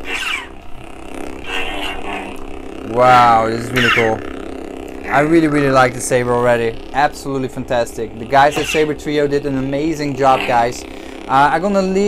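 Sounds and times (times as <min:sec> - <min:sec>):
lightsaber swing sound: 0:00.0 - 0:00.8, 0:01.4 - 0:04.3, 0:05.0 - 0:10.7
lightsaber humming: 0:00.0 - 0:12.0.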